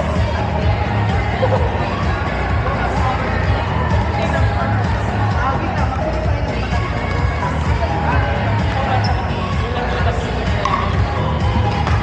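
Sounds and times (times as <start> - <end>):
music: 0.0 - 12.0
people chatting: 0.0 - 12.0
balls bouncing on court: 10.5 - 12.0.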